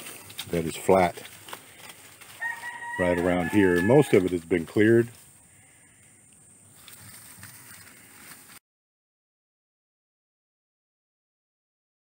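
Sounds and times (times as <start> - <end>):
faint outdoor background noise: 0.0 - 8.6.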